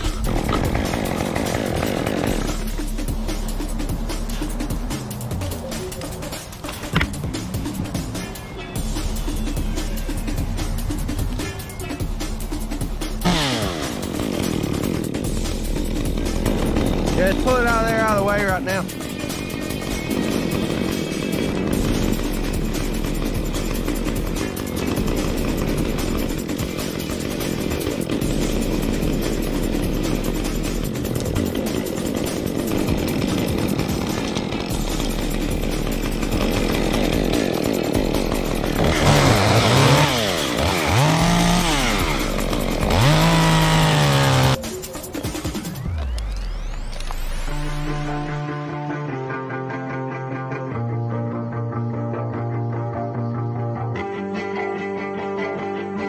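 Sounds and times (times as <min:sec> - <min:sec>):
chainsaw running and revving: 0:00.0 - 0:48.5
music playing: 0:00.0 - 0:56.0.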